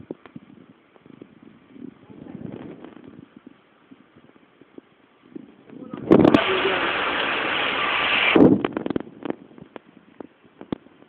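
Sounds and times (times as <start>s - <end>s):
loud steady hiss over fire: 0.0s - 8.7s
fire crackles and pops: 5.7s - 11.0s.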